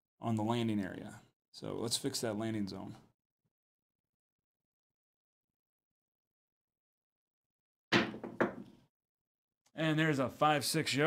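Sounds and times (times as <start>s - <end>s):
dice knocking on table: 7.9s - 8.8s.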